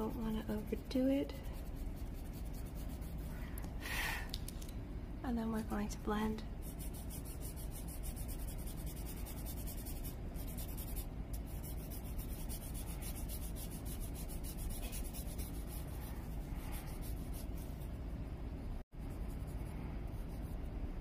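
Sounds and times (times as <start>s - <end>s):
dry scratching on paper: 0.0s - 3.4s, 6.6s - 17.8s.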